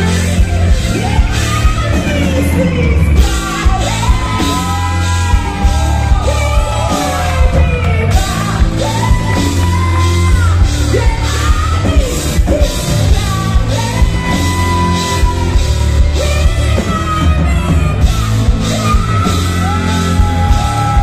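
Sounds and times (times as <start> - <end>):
drums: 0.0 - 21.0
electric guitar: 0.0 - 21.0
man singing and yelling: 0.9 - 21.0.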